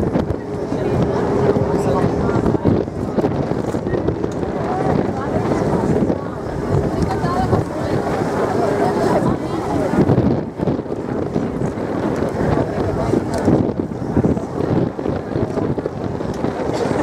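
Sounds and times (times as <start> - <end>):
ferry engine running: 0.0 - 17.0
indistinct chatter: 0.0 - 17.0
wind buffeting microphone: 0.0 - 17.0.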